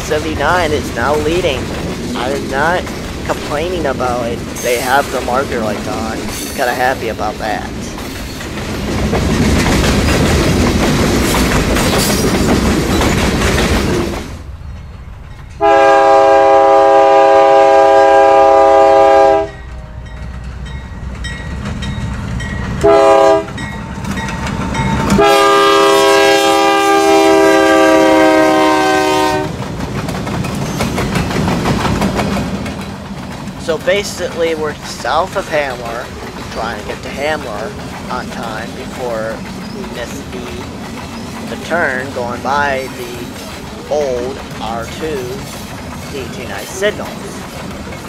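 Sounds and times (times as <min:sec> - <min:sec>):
freight cars rolling over rail joints: 0:00.0 - 0:14.8, 0:29.4 - 0:48.0
locomotive air horn blasts: 0:15.6 - 0:19.6, 0:22.8 - 0:23.5, 0:25.2 - 0:29.5.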